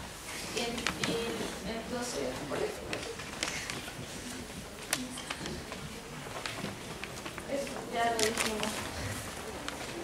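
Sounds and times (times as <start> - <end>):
girl speaking through microphone: 0.5 - 2.8, 7.5 - 9.2.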